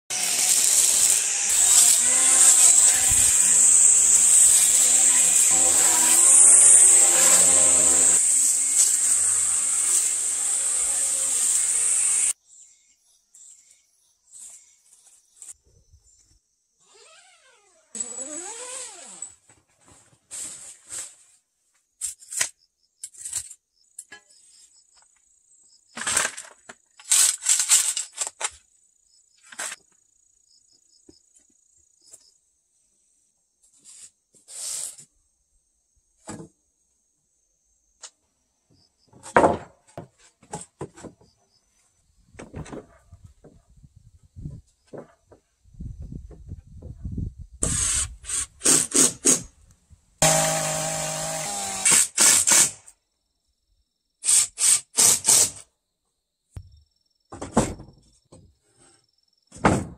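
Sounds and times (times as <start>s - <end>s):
string trimmer whirring: 0.1s - 12.4s, 50.2s - 52.3s
scrapes: 19.2s - 21.4s.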